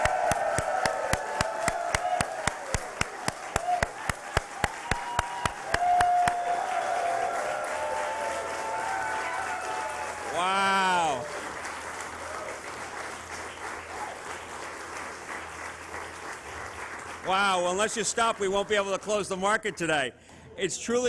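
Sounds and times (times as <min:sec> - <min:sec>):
hands clapping close to microphone: 0:00.0 - 0:10.2
voices cheering: 0:00.0 - 0:11.4
crowd applauding: 0:00.0 - 0:20.0.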